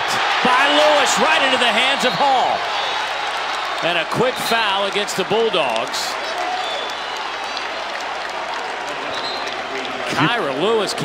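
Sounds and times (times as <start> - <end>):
crowd applauding: 0.0 - 10.7.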